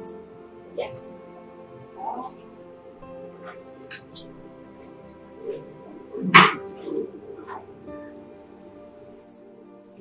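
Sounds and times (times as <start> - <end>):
background music: 0.0 - 10.0
dog barking: 6.3 - 7.5.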